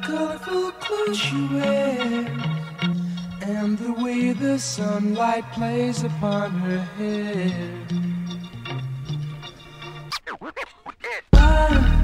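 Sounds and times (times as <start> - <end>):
hip-hop track: 0.0 - 12.0
turntable scratching: 10.1 - 11.8.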